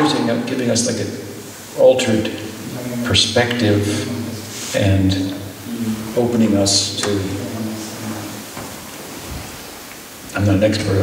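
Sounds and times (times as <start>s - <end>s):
man speaking: 0.0s - 8.6s, 10.3s - 11.0s
steady hiss: 0.0s - 11.0s.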